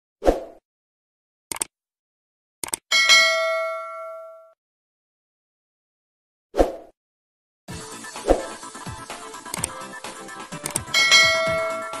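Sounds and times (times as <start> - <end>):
outro music with a beat: 7.7 - 12.0
bell chime: 10.9 - 12.0.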